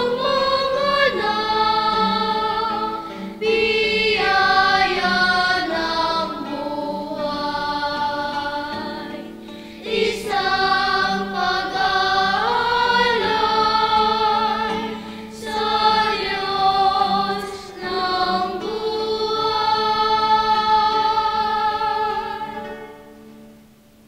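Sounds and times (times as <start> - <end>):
children's choir singing a hymn: 0.0 - 23.6
acoustic guitar accompaniment: 0.0 - 24.0.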